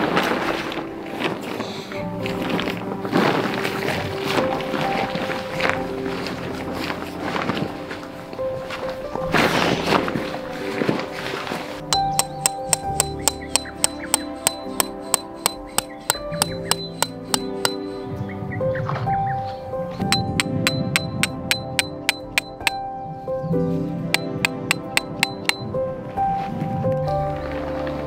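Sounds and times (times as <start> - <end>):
background music: 0.0 - 28.0
hammer striking metal tent pegs: 12.0 - 18.1, 20.1 - 22.8, 24.2 - 25.7.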